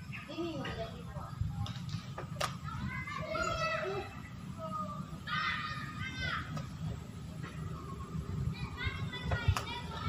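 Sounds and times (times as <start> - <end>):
steady low rumble: 0.0 - 10.0
children calling out: 2.5 - 6.8, 7.6 - 10.0.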